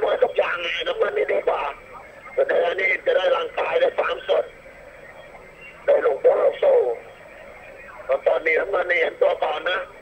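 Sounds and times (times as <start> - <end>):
low steady background noise: 0.0 - 10.0.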